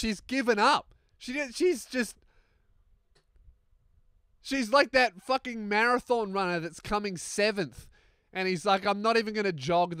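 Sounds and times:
man talking: 0.0 - 2.2, 4.4 - 10.0.

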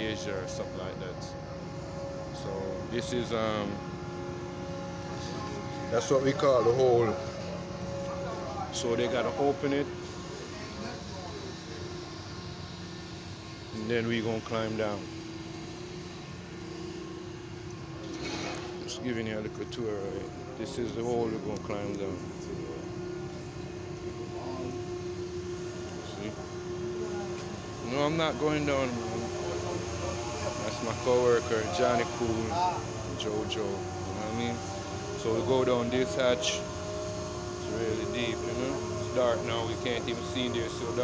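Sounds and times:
constant machinery tones: 0.0 - 41.0
steady hum: 0.0 - 41.0.

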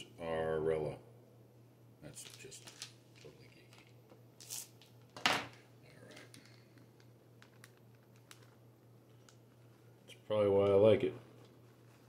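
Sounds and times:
plastic packet crinkling: 2.1 - 4.9, 6.0 - 9.9.

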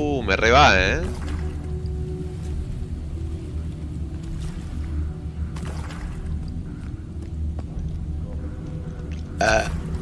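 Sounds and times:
deep rumbling drone: 0.0 - 10.0.

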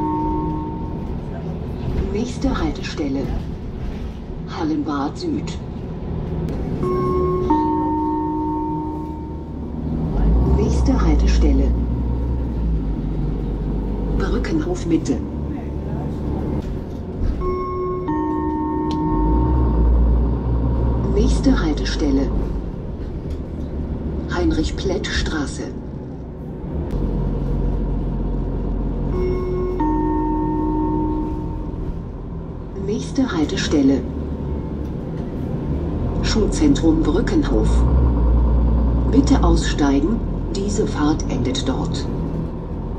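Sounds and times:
bus engine humming: 0.0 - 42.9
two-note descending electronic chime: 6.8 - 9.5, 17.4 - 20.1, 29.1 - 31.8
electronic chime: 29.1 - 31.8.

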